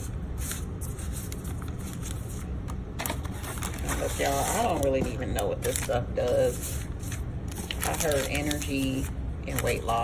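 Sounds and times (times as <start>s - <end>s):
foil and paper sachets rustling: 0.0s - 10.0s.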